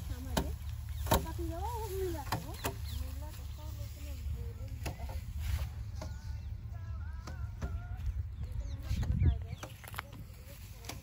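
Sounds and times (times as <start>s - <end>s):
rice stalks beaten against plank: 0.1s - 3.2s, 4.7s - 6.2s.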